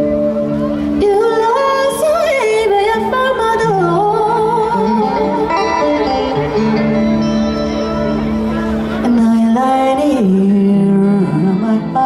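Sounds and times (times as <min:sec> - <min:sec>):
high wavering lead melody: 0:00.0 - 0:12.0
live band with guitars and drums: 0:00.0 - 0:12.0.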